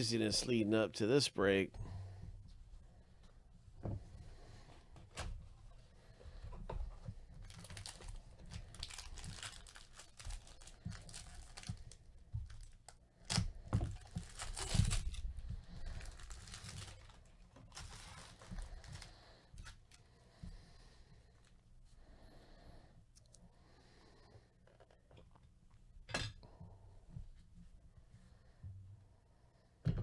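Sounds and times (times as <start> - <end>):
foil wrapper tearing and crinkling: 7.4 - 19.2.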